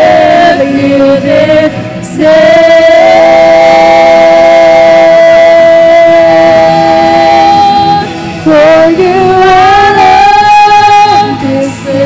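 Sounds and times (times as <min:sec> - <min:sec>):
women singing worship song: 0:00.0 - 0:12.0.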